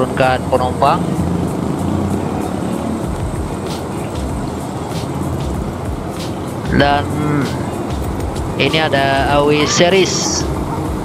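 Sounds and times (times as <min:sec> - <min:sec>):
bus engines idling: 0:00.0 - 0:11.0.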